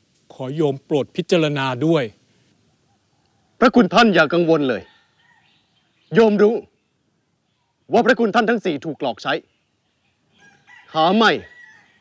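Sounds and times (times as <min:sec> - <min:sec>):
man speaking: 0:00.3 - 0:02.2, 0:03.6 - 0:04.9, 0:06.1 - 0:06.7, 0:07.9 - 0:09.5, 0:10.9 - 0:11.5.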